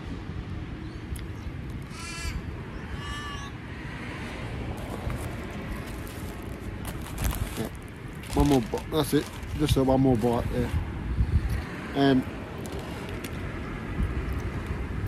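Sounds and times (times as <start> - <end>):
crow cawing: 1.8 - 3.6.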